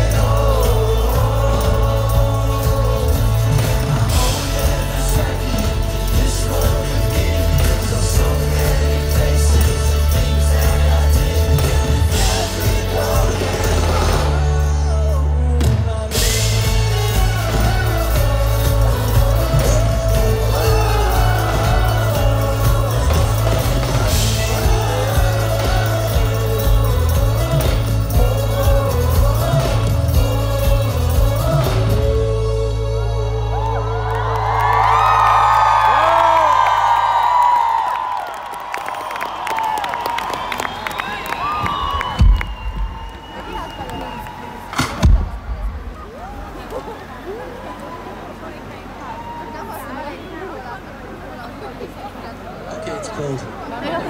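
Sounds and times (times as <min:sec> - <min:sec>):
pop-rock band playing: 0:00.0 - 0:38.2
crowd cheering and whooping: 0:16.2 - 0:54.0.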